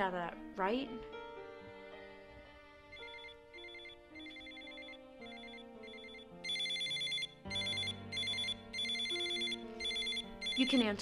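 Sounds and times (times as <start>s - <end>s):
phone ringtone trills: 2.9s - 11.0s.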